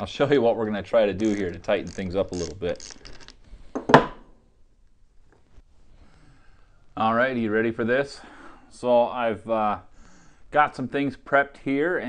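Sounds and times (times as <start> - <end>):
small metallic clicks: 1.2 - 3.4.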